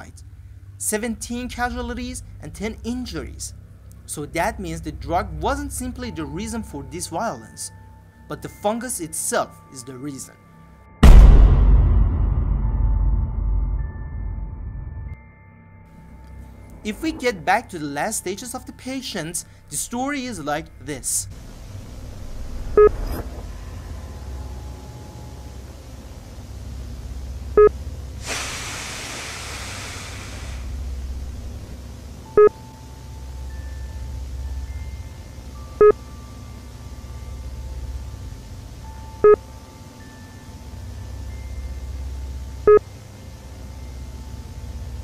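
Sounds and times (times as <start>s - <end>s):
low steady drone: 0.0s - 8.3s, 10.6s - 45.0s
low rumble and tape hiss: 0.0s - 15.2s, 15.8s - 28.2s, 28.9s - 45.0s
faint steady tones: 15.8s - 28.2s, 30.7s - 45.0s
short electronic beep: 22.7s - 23.4s.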